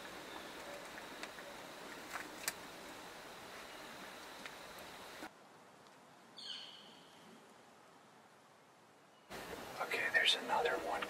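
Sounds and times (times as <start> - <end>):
outdoor ambience hiss: 0.0 - 11.0
bird call: 6.4 - 7.2.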